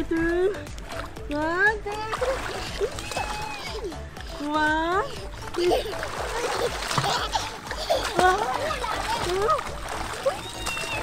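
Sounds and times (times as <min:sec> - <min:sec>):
sea water splashing: 0:00.0 - 0:11.0.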